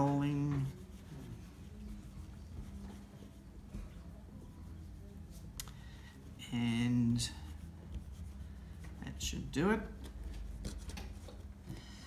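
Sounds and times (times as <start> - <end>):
low room hum: 0.0 - 12.0
palms rubbing modelling dough: 0.0 - 12.0.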